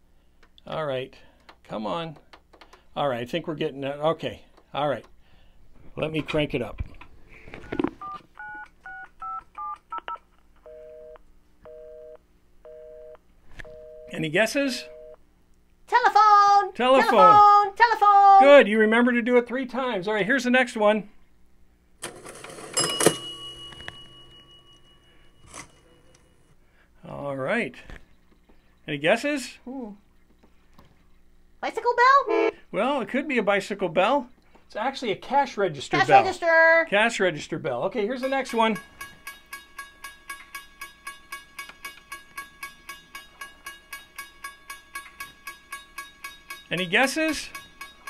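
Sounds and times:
cash register bell ding: 0:22.0 - 0:26.5, 0:38.2 - 0:48.0
cash register mechanical rattle: 0:22.0 - 0:26.5.

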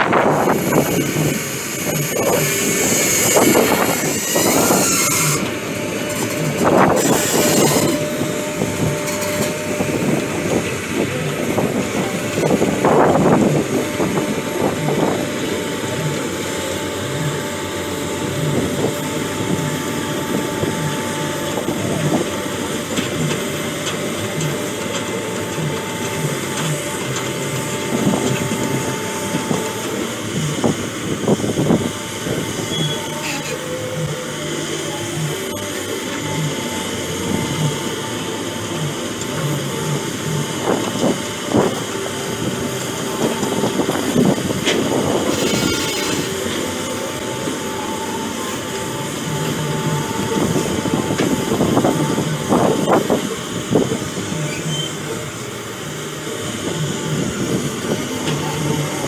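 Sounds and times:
diesel engine running: 0:00.0 - 0:59.0
steel tracks clanking and squealing: 0:00.0 - 0:59.0.

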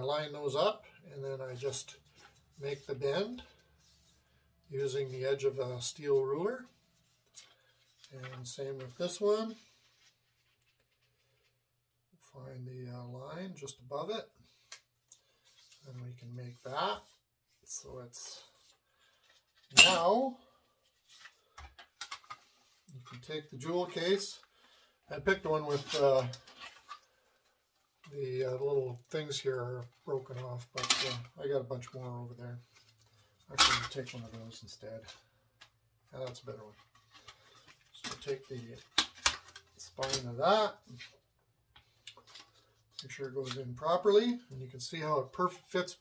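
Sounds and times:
soft cardstock rustles: 0:01.5 - 0:11.7, 0:14.5 - 0:19.7, 0:20.4 - 0:46.0.

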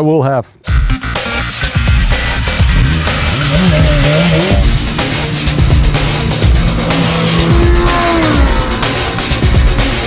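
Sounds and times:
background music: 0:00.6 - 0:10.0
motorcycle engine revving: 0:01.4 - 0:10.0.

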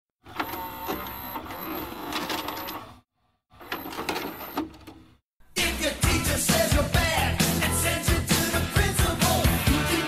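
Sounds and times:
cassette mechanism whirring and clicking: 0:00.2 - 0:03.0.

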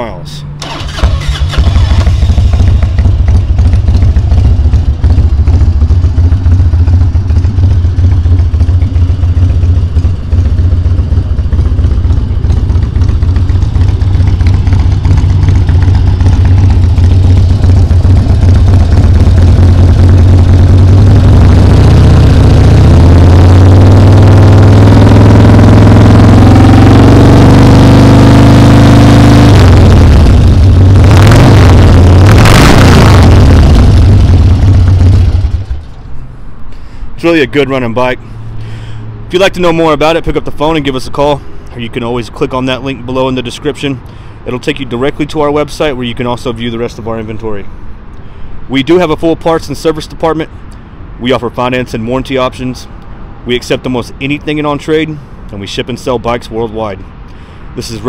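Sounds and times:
motorcycle engine idling: 0:00.6 - 0:28.3, 0:29.6 - 0:32.4, 0:33.1 - 0:36.1.

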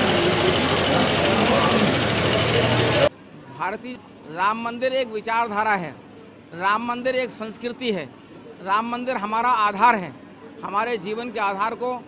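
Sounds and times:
crowd talking: 0:00.0 - 0:04.2.

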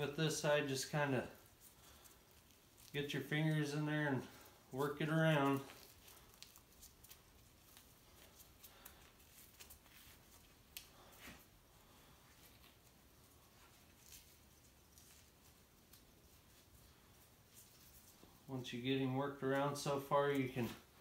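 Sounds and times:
soft clicks and rustles: 0:00.9 - 0:18.6.

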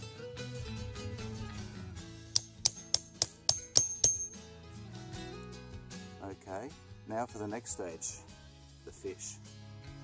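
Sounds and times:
knife tapping into wooden stick: 0:02.4 - 0:04.4
quiet guitar music: 0:04.1 - 0:08.8.

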